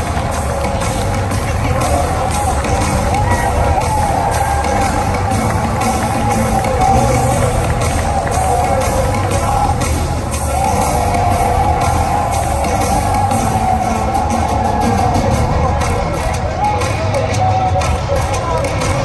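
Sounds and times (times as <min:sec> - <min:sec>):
music over loudspeakers: 0:00.0 - 0:19.0.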